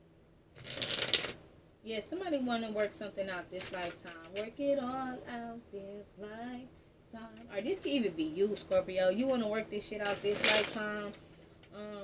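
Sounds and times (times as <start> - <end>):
cards being shuffled: 0.6 - 1.4, 10.1 - 10.8.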